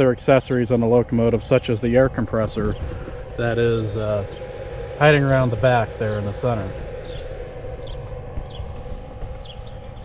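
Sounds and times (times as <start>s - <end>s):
bird chirping: 0.0s - 10.0s
steady hum and low rumble: 0.0s - 10.0s.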